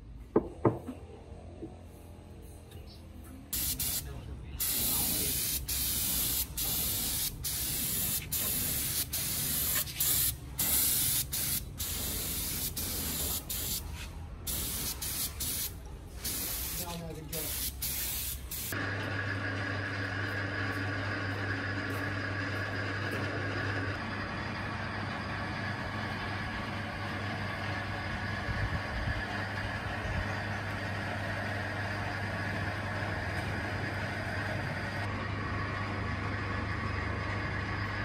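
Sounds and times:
spray gun hissing: 3.6 - 13.9, 14.5 - 18.8.

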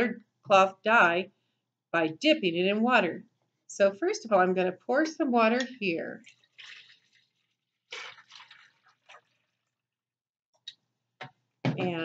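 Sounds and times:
water pouring from pitcher: 6.1 - 9.8.

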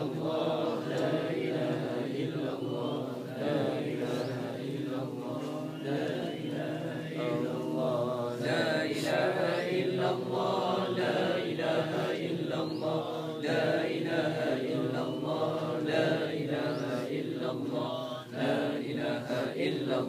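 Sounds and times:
men chanting in unison: 0.0 - 20.0.

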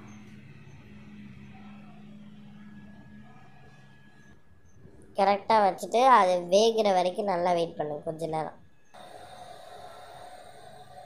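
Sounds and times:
faint steady tone: 0.0 - 11.0
steam venting hiss: 9.0 - 11.0.

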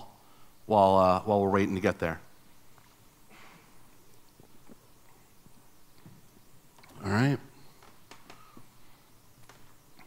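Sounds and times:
person speaking: 6.9 - 7.6.

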